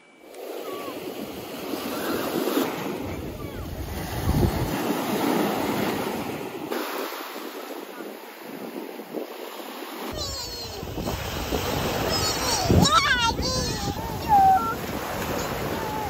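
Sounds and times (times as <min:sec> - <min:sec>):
waves breaking on sandy shore: 0:00.0 - 0:16.0
wind rumbling on microphone: 0:00.4 - 0:16.0.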